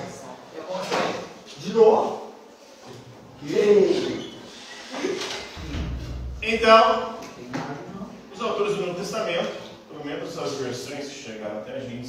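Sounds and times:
brief loud door sound: 0:05.6 - 0:07.2.

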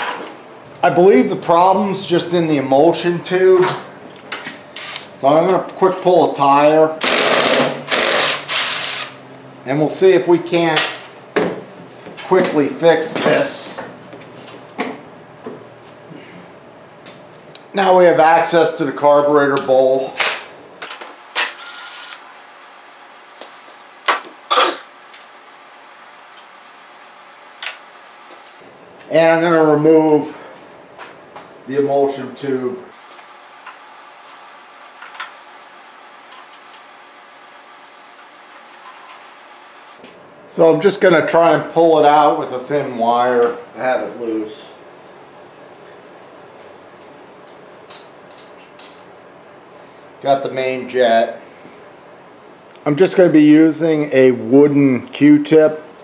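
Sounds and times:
impact wrench whirring: 0:04.8 - 0:05.1, 0:07.0 - 0:09.2, 0:21.4 - 0:22.2.

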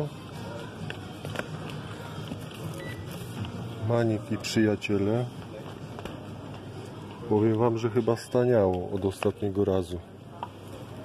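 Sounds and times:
shop background hum: 0:00.0 - 0:11.0.

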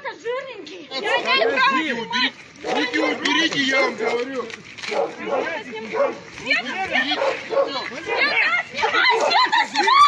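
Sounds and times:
agitated voices shouting: 0:00.0 - 0:10.0.

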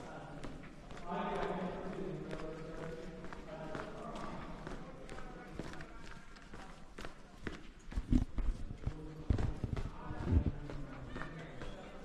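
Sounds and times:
brisk footsteps in tunnel: 0:00.0 - 0:12.0.

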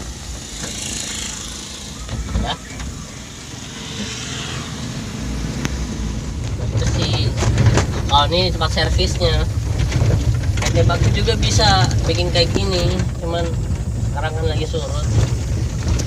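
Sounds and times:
rushing hiss: 0:00.0 - 0:02.2
car engine and tyres rumble: 0:00.0 - 0:16.0.

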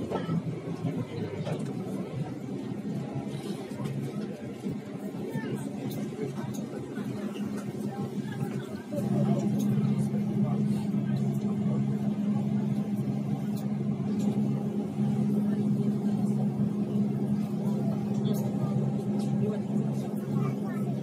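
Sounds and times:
faint voices: 0:00.0 - 0:21.0
vehicle low hum: 0:05.8 - 0:21.0.

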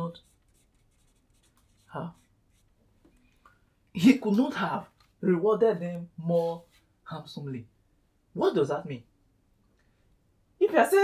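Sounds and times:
marker pen on whiteboard: 0:00.0 - 0:03.5.

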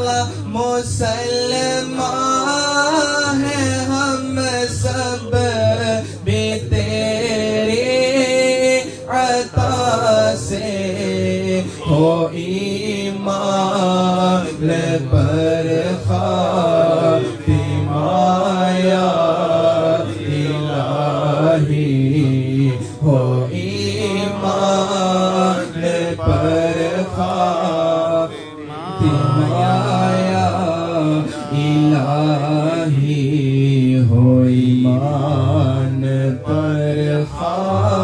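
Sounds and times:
man chanting into microphone: 0:00.0 - 0:38.0.

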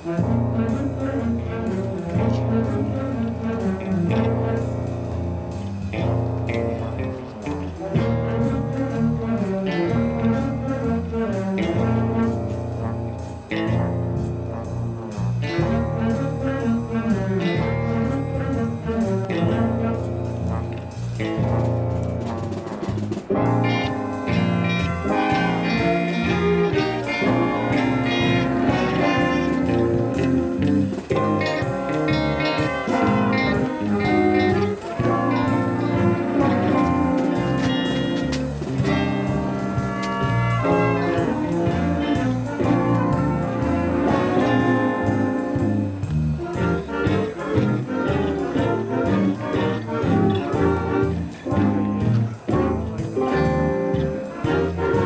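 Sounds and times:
school band playing saxophones and brass: 0:00.0 - 0:55.0.

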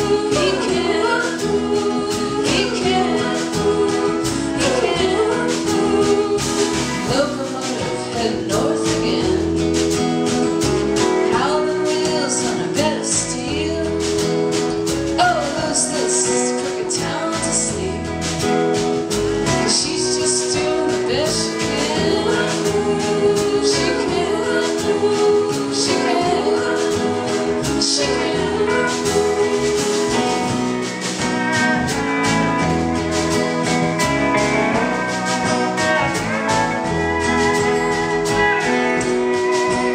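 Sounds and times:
people singing: 0:00.0 - 0:14.2, 0:15.2 - 0:18.4, 0:19.4 - 0:31.3
strummed guitar: 0:00.0 - 0:39.9.

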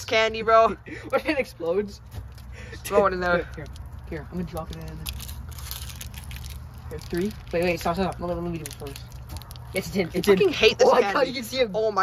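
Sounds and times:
fire crackling: 0:00.1 - 0:10.8.

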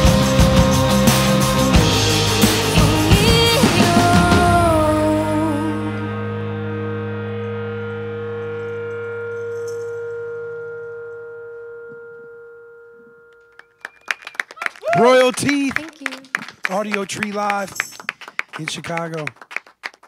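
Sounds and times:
band chord ringing out: 0:00.0 - 0:13.8
people clapping: 0:13.4 - 0:20.0
man speaking: 0:14.9 - 0:15.8, 0:16.6 - 0:18.0, 0:18.6 - 0:19.4.

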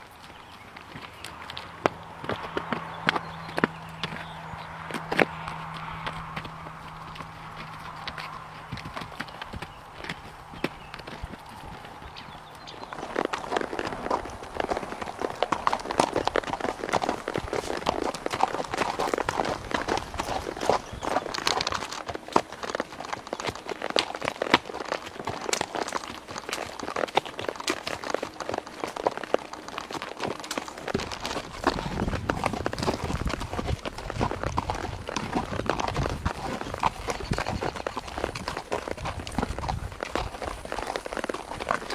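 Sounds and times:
horse hooves on dirt and rock: 0:00.0 - 0:41.9.

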